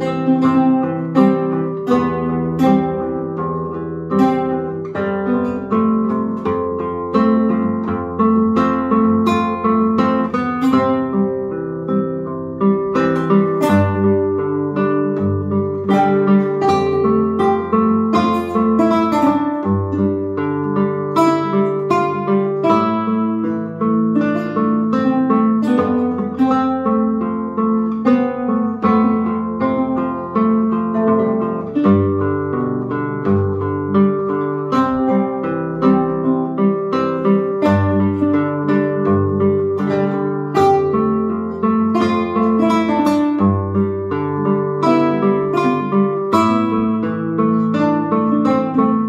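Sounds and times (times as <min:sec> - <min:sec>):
classical guitars fingerpicked duet: 0:00.0 - 0:49.0.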